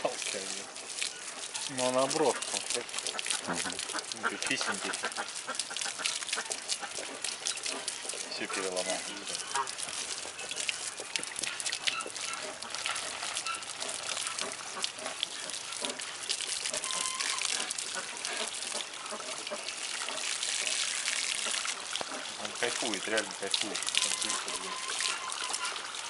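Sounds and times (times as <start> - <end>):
hose water spraying: 0.0 - 26.0.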